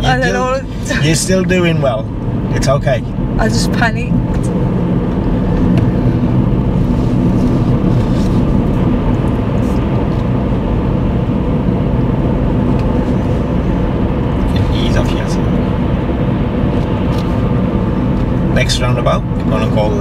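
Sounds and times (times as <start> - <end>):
car engine and road noise: 0.0 - 20.0.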